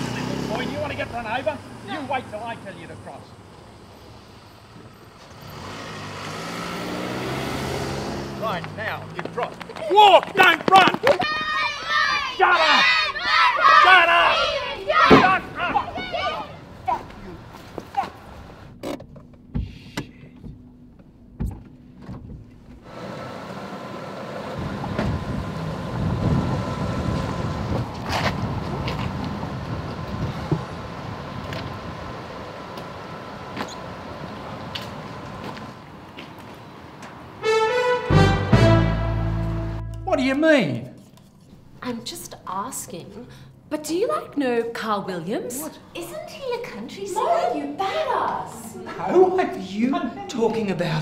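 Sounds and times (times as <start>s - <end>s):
car approaching: 0.0s - 51.0s
street traffic: 0.0s - 51.0s
soft knocks inside a car: 19.5s - 22.6s.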